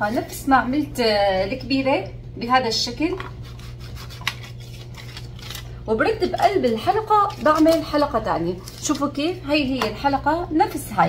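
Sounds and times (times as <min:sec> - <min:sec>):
cutter scraping pastry: 0:03.3 - 0:09.2.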